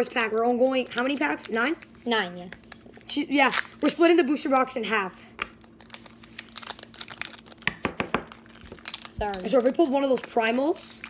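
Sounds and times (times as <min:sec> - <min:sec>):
foil wrapper crinkling and tearing: 0:00.0 - 0:04.1, 0:05.5 - 0:11.0.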